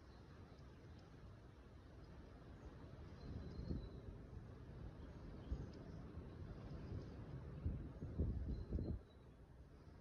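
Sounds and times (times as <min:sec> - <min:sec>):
wind rumble on microphone: 0:03.0 - 0:09.2.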